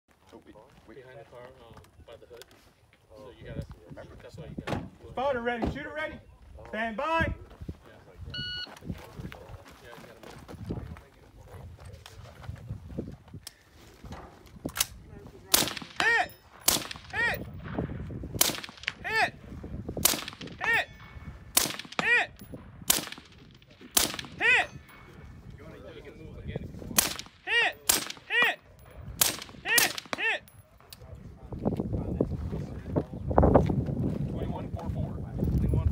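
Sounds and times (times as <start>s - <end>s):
shot timer beep: 8.4s - 8.7s
rifle shots: 14.8s - 19.2s, 20.0s - 24.5s, 27.0s - 28.5s, 29.1s - 30.4s.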